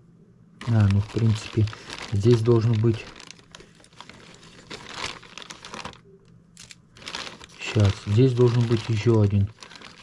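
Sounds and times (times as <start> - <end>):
plastic bag crinkling: 0.6 - 10.0.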